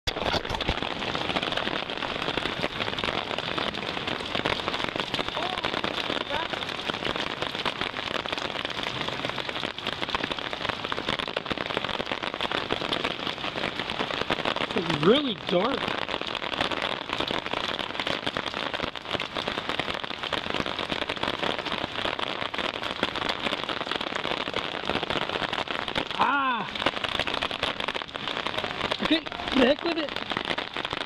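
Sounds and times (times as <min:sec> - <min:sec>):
steady rain falling: 0:00.1 - 0:31.0.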